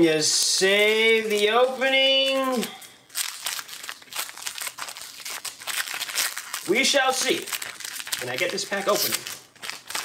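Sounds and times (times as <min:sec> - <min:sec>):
foil wrapper tearing and crinkling: 0:00.0 - 0:10.0.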